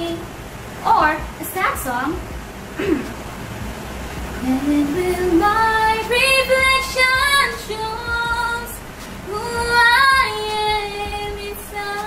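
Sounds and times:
woman singing: 0.0s - 0.2s, 4.4s - 12.0s.

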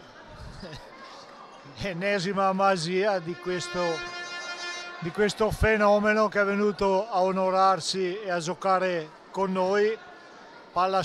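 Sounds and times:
faint arena ambience: 0.0s - 11.0s.

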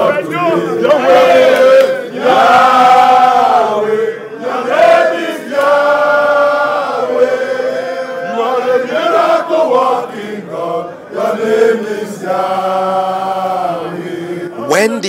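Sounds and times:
crowd of men chanting: 0.0s - 14.7s.

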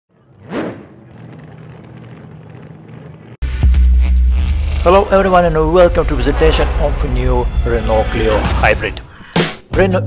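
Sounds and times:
deep bass hit: 3.4s - 8.9s
whoosh: 4.7s - 8.6s.

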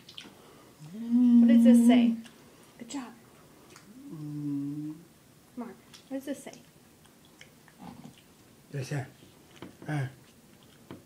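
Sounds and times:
person humming a low note: 0.8s - 2.2s, 4.0s - 5.0s.

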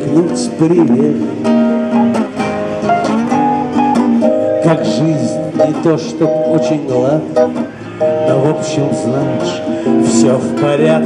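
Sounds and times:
acoustic guitar strumming: 0.0s - 11.0s
keyboard chords: 0.0s - 11.0s.

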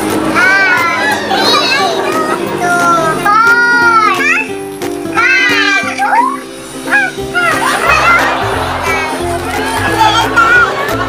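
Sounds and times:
song playing in background: 0.0s - 11.0s.

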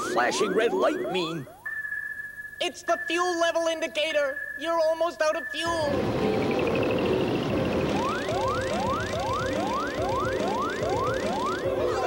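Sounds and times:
rising whooping alarm: 0.0s - 2.6s, 4.2s - 12.0s
background music: 0.0s - 12.0s.

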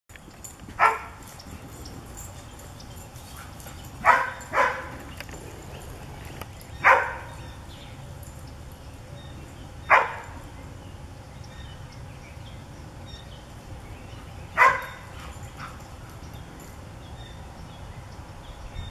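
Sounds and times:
dog barking: 0.8s - 1.2s, 4.0s - 5.0s, 6.8s - 7.4s, 9.9s - 10.4s, 14.6s - 15.8s.

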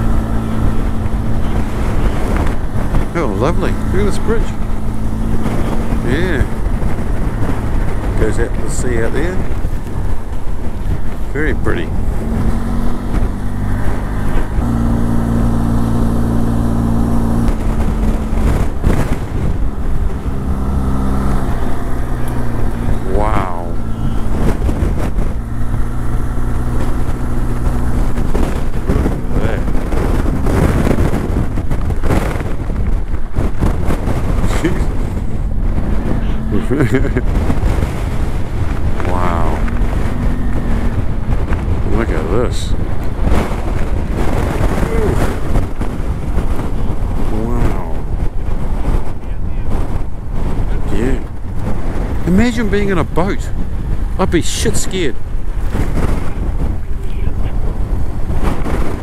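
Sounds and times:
motorcycle engine running: 0.0s - 59.0s
wind noise on microphone: 0.0s - 59.0s.

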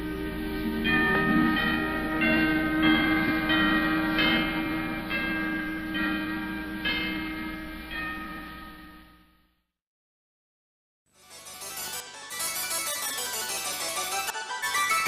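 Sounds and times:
orchestral music: 0.0s - 8.3s
bells struck in slow melody: 0.0s - 9.4s.

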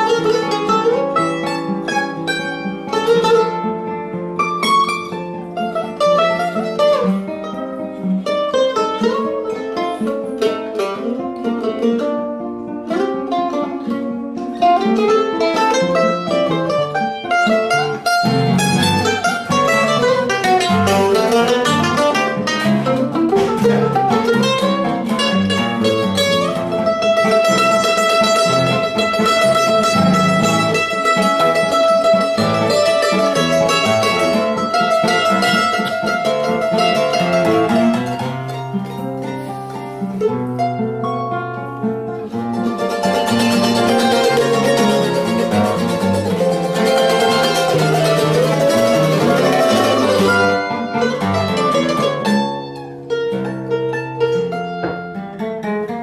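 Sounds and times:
mandolin melody: 0.0s - 56.0s
nylon-string guitar bass lines: 0.0s - 56.0s.

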